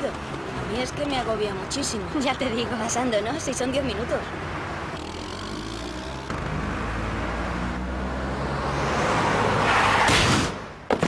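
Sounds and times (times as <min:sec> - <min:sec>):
vehicle engine humming: 0:00.0 - 0:09.8
street traffic: 0:00.0 - 0:11.0.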